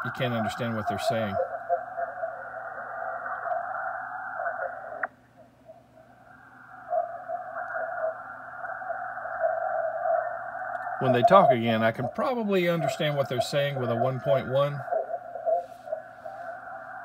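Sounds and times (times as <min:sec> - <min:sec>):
muffled radio voices: 0:00.0 - 0:05.1, 0:06.9 - 0:17.0
radio band noise: 0:00.0 - 0:17.0
radio click: 0:00.5 - 0:05.2, 0:07.5 - 0:08.7.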